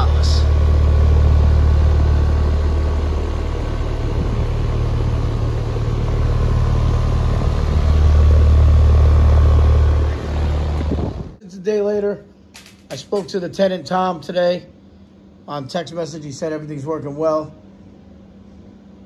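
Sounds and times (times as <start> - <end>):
air conditioner unit rumbling: 0.0 - 19.0
faint steady whine: 0.0 - 19.0.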